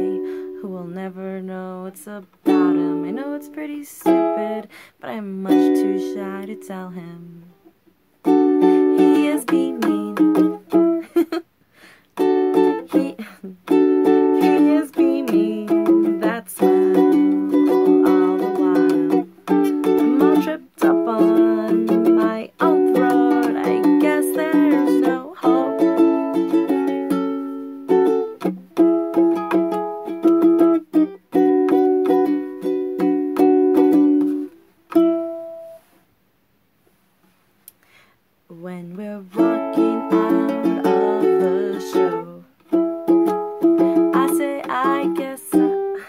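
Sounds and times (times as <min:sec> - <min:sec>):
woman singing: 0:00.0 - 0:07.6, 0:08.6 - 0:11.3, 0:12.2 - 0:27.2, 0:38.5 - 0:42.6, 0:43.2 - 0:46.0
ukulele strumming chords: 0:00.0 - 0:11.3, 0:12.2 - 0:35.9, 0:38.9 - 0:46.0.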